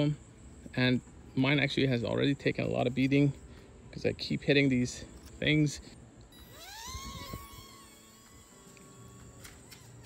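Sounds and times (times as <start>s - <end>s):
small propeller motor whining: 6.3s - 10.0s.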